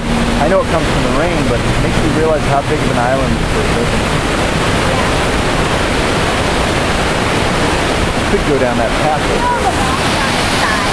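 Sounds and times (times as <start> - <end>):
waterfall rushing: 0.0 - 10.9.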